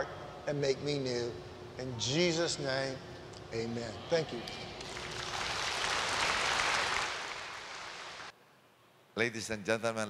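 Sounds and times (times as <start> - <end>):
congregation applauding: 4.8 - 8.3.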